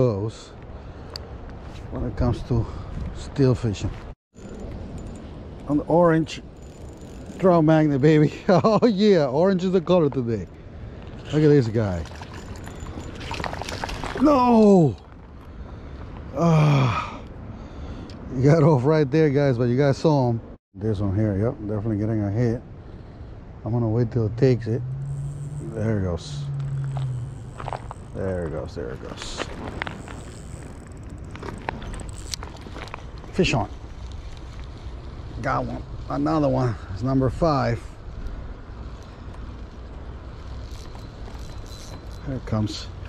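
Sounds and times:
fish thrashing and splashing: 12.0s - 14.2s.

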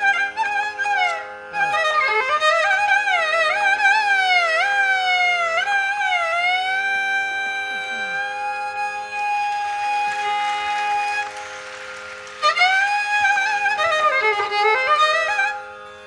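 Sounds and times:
violin melody with slides: 0.0s - 16.0s.

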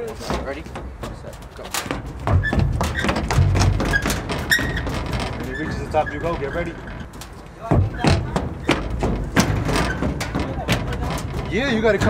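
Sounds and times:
footsteps running on metal steps: 0.0s - 12.0s.

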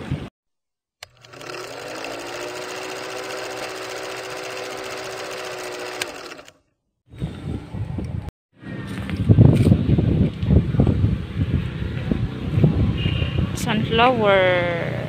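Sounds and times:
film projector whirring: 1.0s - 6.6s.

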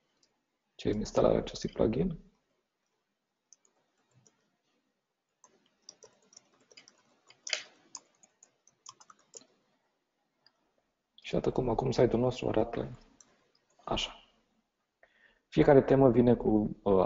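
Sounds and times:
computer keys and mouse clicking: 3.5s - 4.5s, 5.4s - 9.6s.

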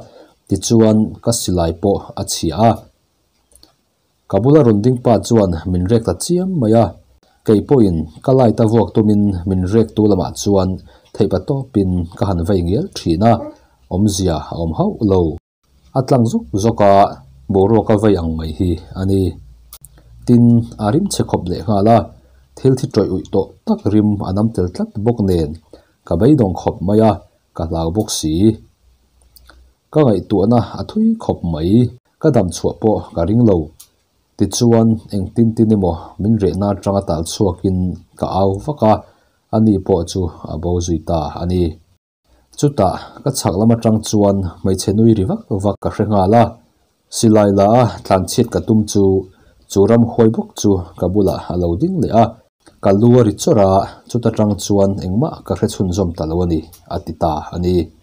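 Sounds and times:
man narrating: 0.0s - 2.9s, 4.3s - 19.4s, 20.2s - 28.7s, 29.9s - 33.8s, 34.4s - 41.8s, 42.6s - 58.0s
person speaking: 0.0s - 41.9s, 42.5s - 58.0s.

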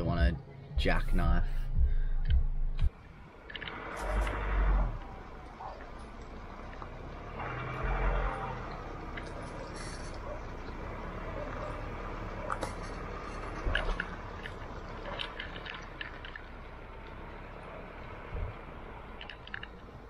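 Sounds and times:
road and wind noise: 0.0s - 20.0s.

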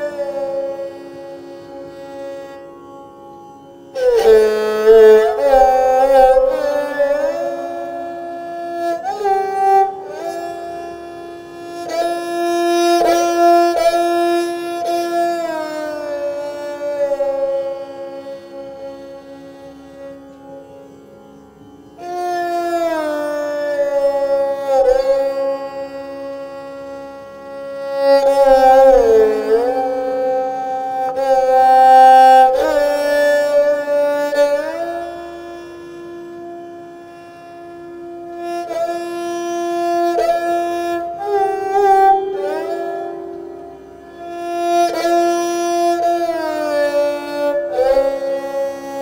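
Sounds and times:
bowed string instrument: 0.0s - 49.0s.

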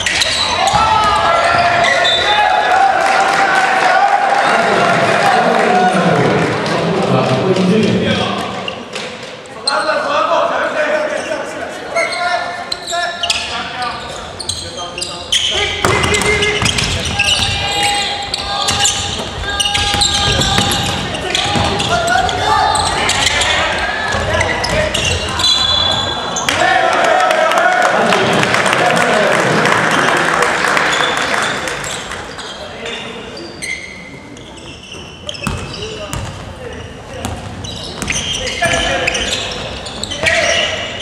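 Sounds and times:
players shouting: 0.0s - 6.6s, 15.5s - 30.1s
ball bouncing on wooden court: 15.8s - 17.6s, 18.7s - 22.4s, 35.4s - 36.5s, 37.2s - 38.8s.

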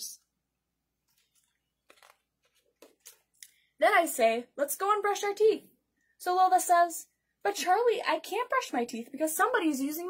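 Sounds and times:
paper page rustling: 1.0s - 3.3s
woman speaking: 3.8s - 10.0s.

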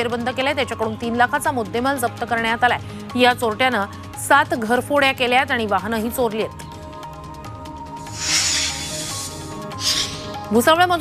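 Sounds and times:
background music: 0.0s - 11.0s
whoosh sound effect: 8.1s - 10.3s.

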